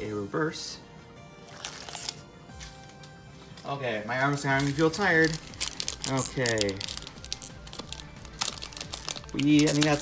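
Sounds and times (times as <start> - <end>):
foil wrapper crinkling: 1.5 - 2.2, 4.2 - 10.0.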